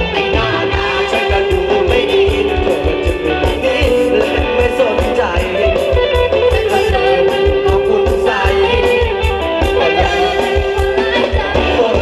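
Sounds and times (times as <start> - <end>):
dance band music: 0.0 - 12.0
electric guitar: 0.0 - 12.0
steady drum beat: 0.0 - 12.0.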